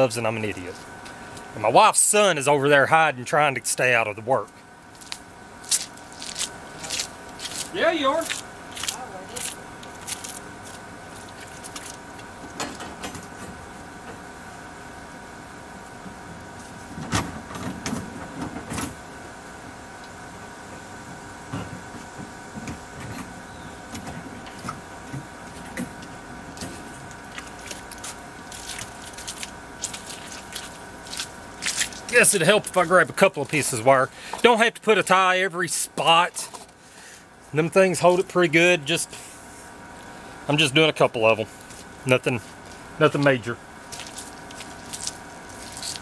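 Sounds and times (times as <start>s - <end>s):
faint mechanical hum: 0.0s - 46.0s.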